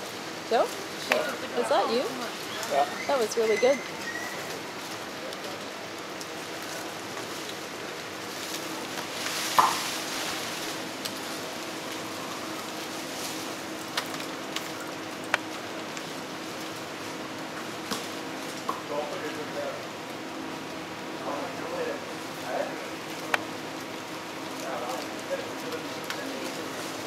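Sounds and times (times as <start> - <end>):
outdoor background hiss: 0.0 - 27.0
foliage rustling: 6.5 - 17.2.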